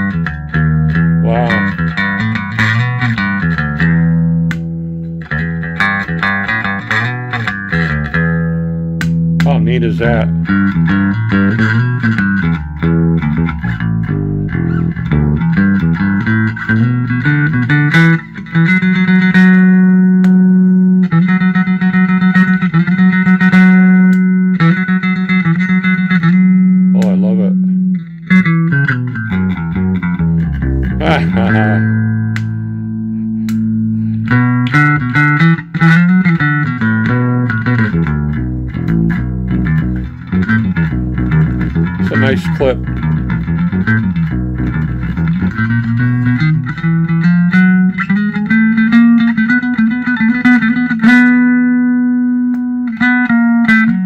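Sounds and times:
electric bass playing: 0.0s - 54.0s.

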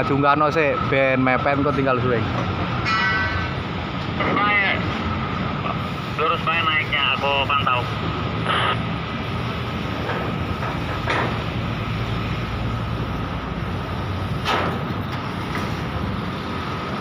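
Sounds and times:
construction machinery drone: 0.0s - 17.0s.

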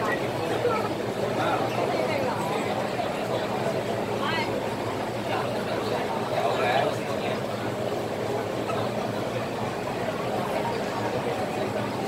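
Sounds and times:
crowd murmuring: 0.0s - 12.0s
train standing at platform: 0.0s - 12.0s.

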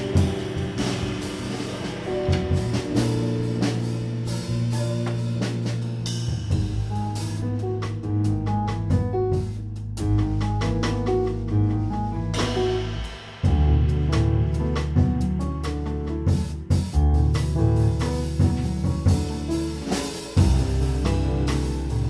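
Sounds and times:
drum kit with cymbals: 0.0s - 22.0s
electric bass: 0.0s - 22.0s.

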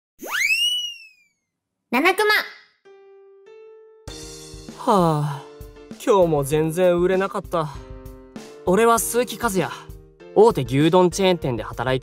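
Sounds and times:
cartoon whistle sound effect: 0.2s - 1.4s.

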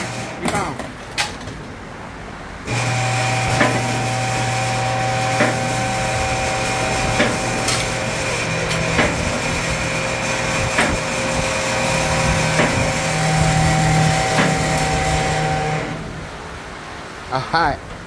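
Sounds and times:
hydraulic car lift running: 0.0s - 1.0s, 2.6s - 16.4s.

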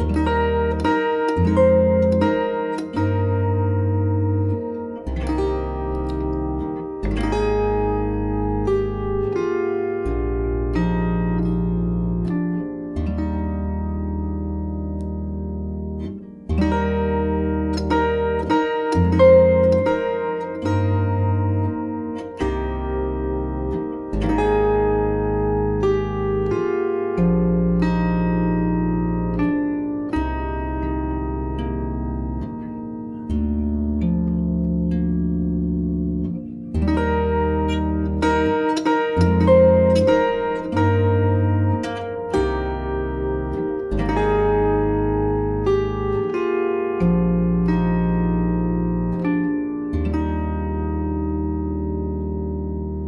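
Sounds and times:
deep ringing bass notes: 0.0s - 53.0s
harp plucked chords: 0.0s - 53.0s.

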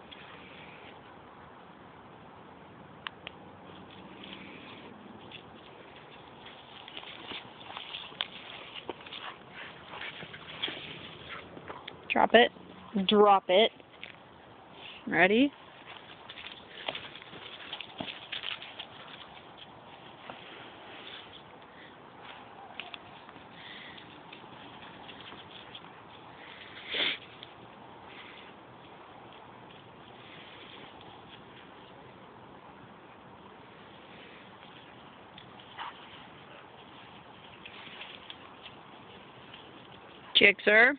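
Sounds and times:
paws scuffing dry grass and leaves: 3.7s - 11.9s, 14.7s - 27.5s, 33.8s - 40.4s.

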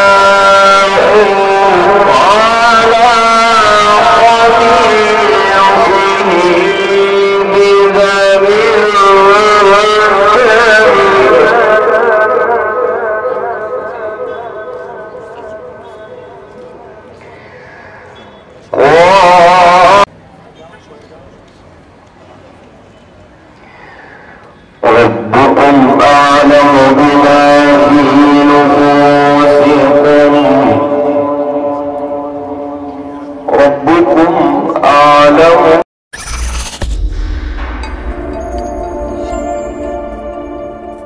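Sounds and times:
man chanting: 0.0s - 17.0s, 18.7s - 20.1s, 24.8s - 35.8s
background noise: 0.0s - 41.0s.

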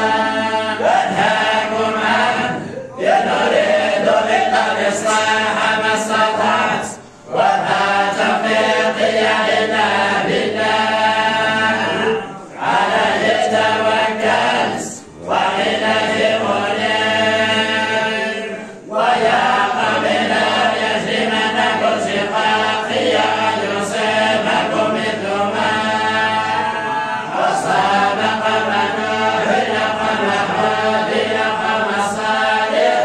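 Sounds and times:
men chanting in unison: 0.0s - 33.0s.

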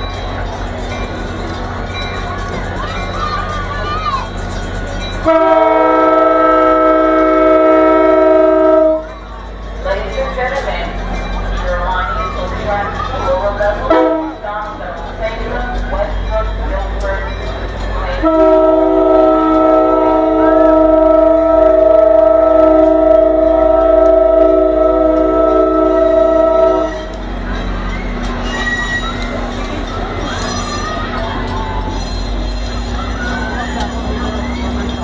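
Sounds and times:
locomotive air horn blast: 5.2s - 9.1s, 13.9s - 14.4s, 18.2s - 27.1s.

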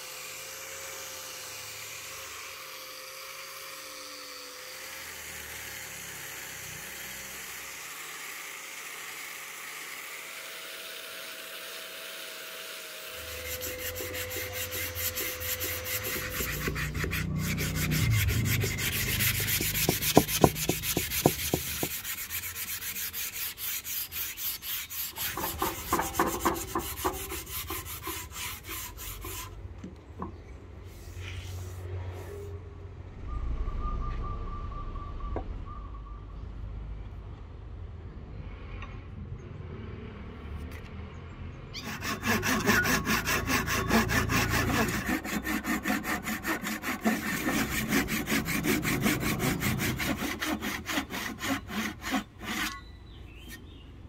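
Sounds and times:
angle grinder sanding wood: 0.0s - 29.6s, 41.8s - 53.7s
sandpaper rubbing on wood: 13.2s - 29.5s, 30.8s - 32.4s, 41.8s - 52.8s.

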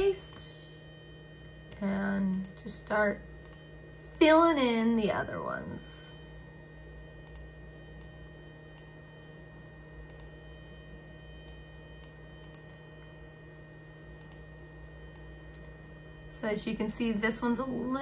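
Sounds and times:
faint low hum: 0.0s - 18.0s.

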